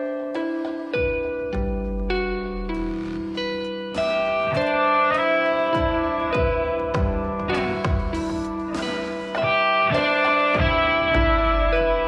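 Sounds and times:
electric guitar sustained notes: 0:00.0 - 0:12.0.

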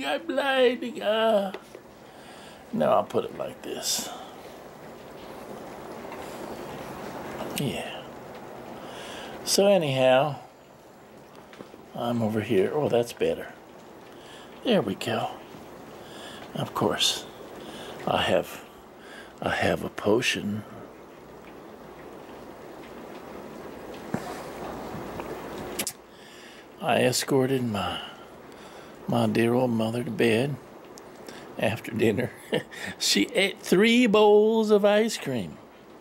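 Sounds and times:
steady rain falling: 0:00.0 - 0:36.0.

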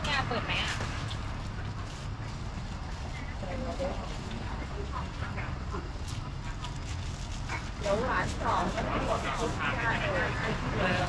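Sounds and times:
woman speaking: 0:00.0 - 0:01.0
faint voices of people: 0:01.7 - 0:11.0.

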